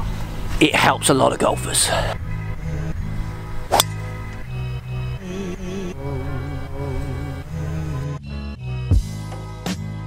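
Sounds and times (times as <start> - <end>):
background music: 0.7 - 10.0
golf driver striking ball: 3.7 - 4.4.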